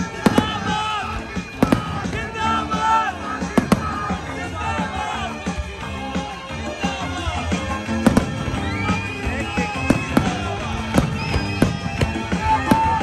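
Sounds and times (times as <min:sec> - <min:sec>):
loud music with held tones: 0:00.0 - 0:13.0.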